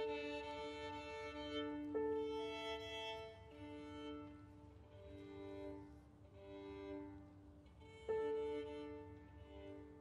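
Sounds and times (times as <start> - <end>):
violin strings bowed: 0.0 - 5.8.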